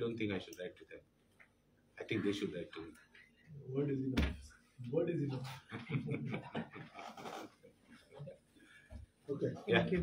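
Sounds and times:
people laughing: 5.7 - 7.4.

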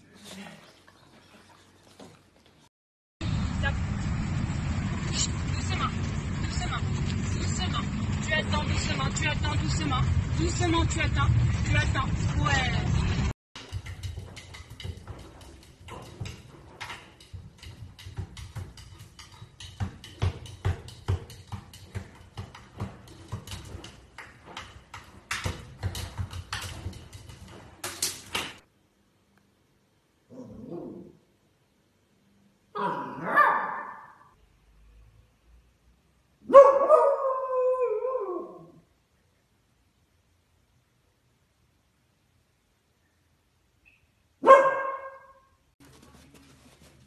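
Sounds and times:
puppy paws thumping in washer drum: 13.6 - 28.6, 45.8 - 47.0
dog barking: 33.1 - 34.3, 36.4 - 38.4, 44.4 - 45.5.

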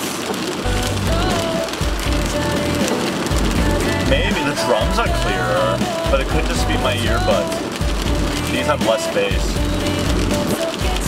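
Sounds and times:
pop song with bass beat: 0.0 - 11.0
rain on a car roof: 0.0 - 11.0.

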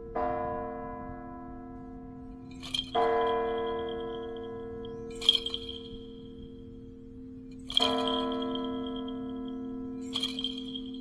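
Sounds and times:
church bell tolling: 0.0 - 11.0.

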